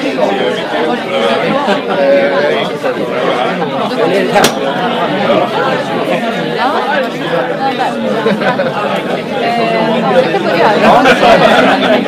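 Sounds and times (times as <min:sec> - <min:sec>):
audience chatter: 0:00.0 - 0:12.0
people laughing: 0:01.2 - 0:02.7, 0:07.9 - 0:09.5, 0:10.2 - 0:12.0.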